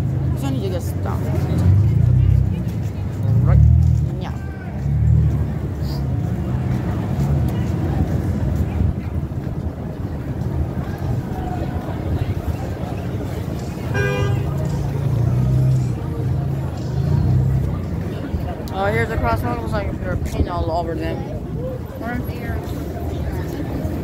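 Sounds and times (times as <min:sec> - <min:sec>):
street traffic rumble: 0:00.0 - 0:24.0
car horn toot: 0:13.9 - 0:14.6.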